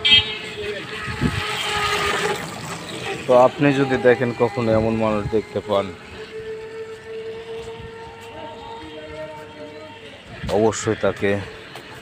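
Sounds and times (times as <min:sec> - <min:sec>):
horn long steady note: 0:00.0 - 0:11.9
faint outdoor background noise: 0:00.0 - 0:12.0.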